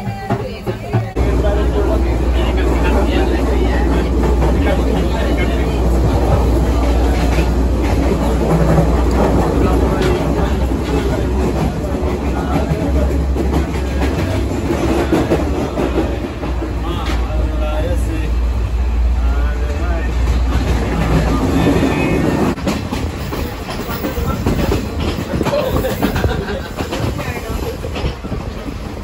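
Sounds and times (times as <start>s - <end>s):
background voices: 0.0s - 29.0s
train running drone and rattle: 0.0s - 29.0s.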